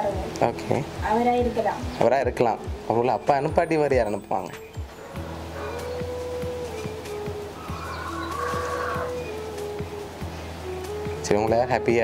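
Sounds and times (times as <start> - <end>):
background music with sustained notes: 0.0 - 12.0
rooster crowing: 5.1 - 6.0, 7.6 - 9.2.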